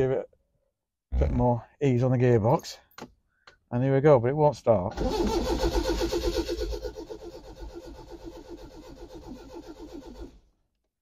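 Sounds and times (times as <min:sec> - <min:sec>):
starter motor cranking engine: 0:04.9 - 0:10.4.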